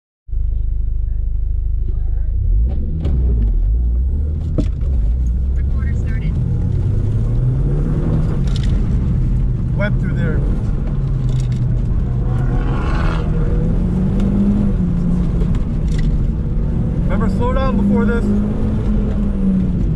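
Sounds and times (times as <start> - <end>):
car engine accelerating from idle: 0.3 - 19.9.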